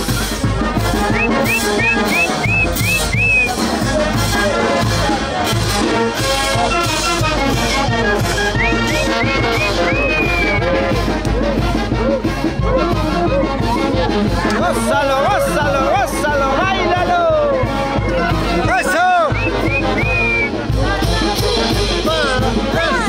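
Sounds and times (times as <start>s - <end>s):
brass band playing dance music: 0.0s - 23.0s.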